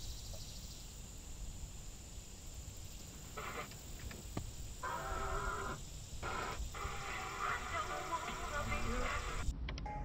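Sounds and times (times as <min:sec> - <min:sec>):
car radio tuning across stations: 0:03.2 - 0:04.1, 0:04.8 - 0:09.5.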